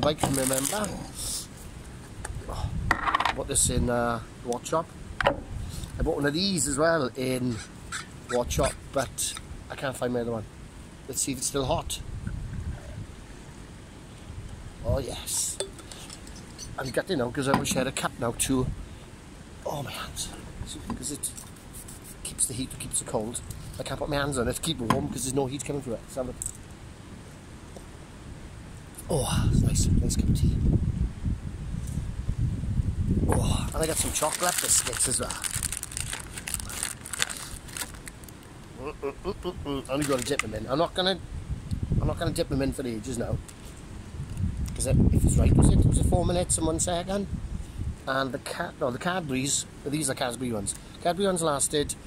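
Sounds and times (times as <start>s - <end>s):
plastic packet crinkling: 0.2s - 1.0s, 33.7s - 38.5s, 39.9s - 40.5s
wind buffeting microphone: 2.1s - 4.2s, 5.0s - 6.6s, 11.6s - 13.3s, 29.1s - 38.0s, 39.4s - 43.4s, 44.0s - 48.0s.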